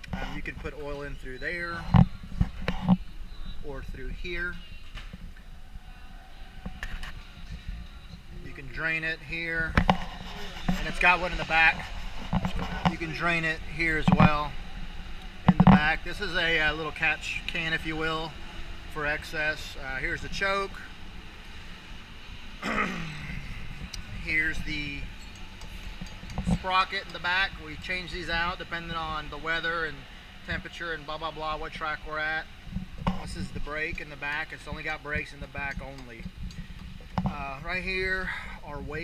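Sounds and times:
low uneven rumble: 0.0s - 39.0s
man clearing throat: 22.6s - 23.4s.

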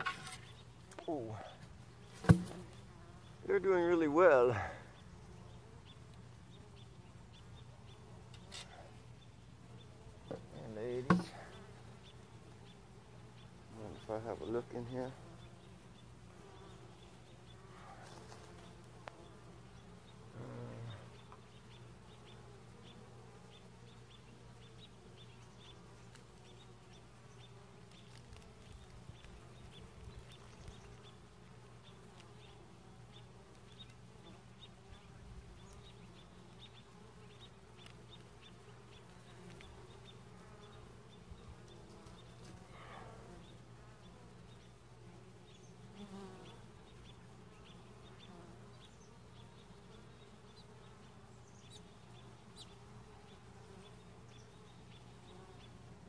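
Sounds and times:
honeybees buzzing: 0.0s - 56.0s.

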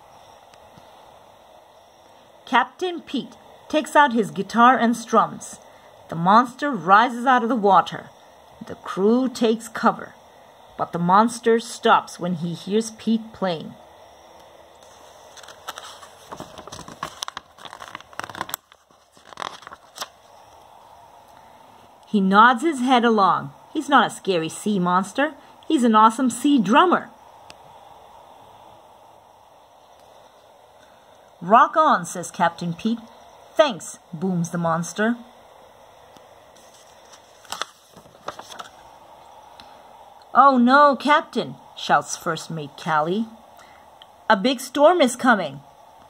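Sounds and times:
paper page rustling: 14.8s - 20.3s, 36.6s - 38.8s.

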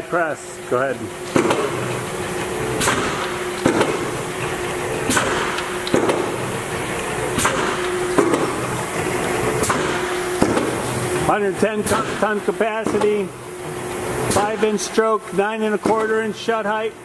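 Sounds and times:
motor and flywheel hum: 0.0s - 17.0s
mechanical press clunk: 1.2s - 15.1s, 15.7s - 16.4s.

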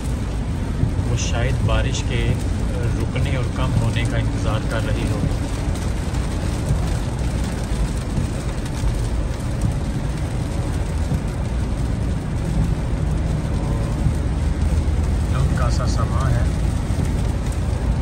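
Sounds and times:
rain hissing on car: 0.0s - 18.0s
tyres rumbling on wet road: 0.0s - 18.0s.

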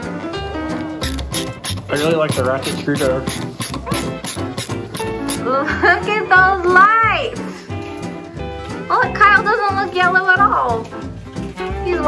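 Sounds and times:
background music: 0.0s - 12.0s
ratchet screwdriver clicking: 1.0s - 5.4s.

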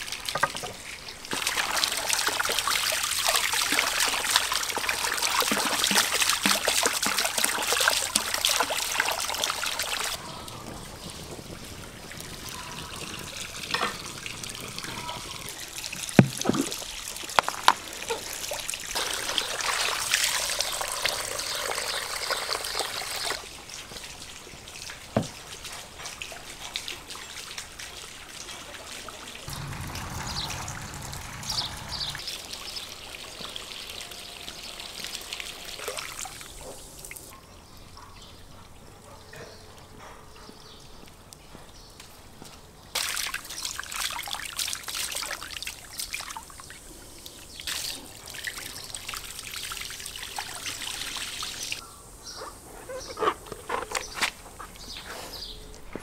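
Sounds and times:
water splashing into plastic bowl: 0.0s - 10.2s, 12.2s - 20.2s.

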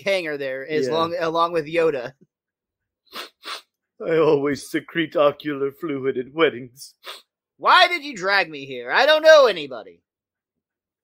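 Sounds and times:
cartoon alien sniffling: 3.1s - 3.8s, 7.0s - 7.3s.

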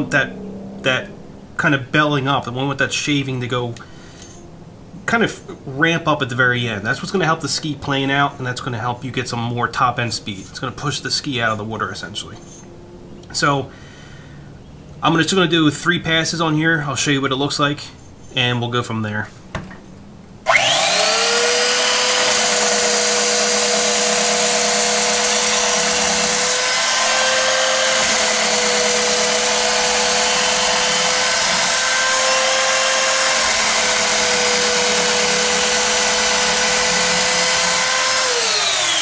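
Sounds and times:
belt sander grinding metal: 20.5s - 39.0s.

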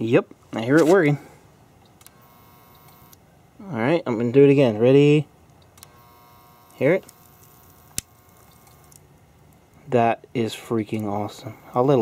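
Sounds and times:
high-pitched coil whine: 5.9s - 9.0s.

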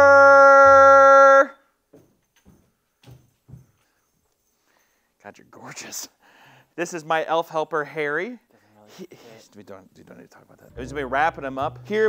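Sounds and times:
man shouting a long call: 0.0s - 1.6s.

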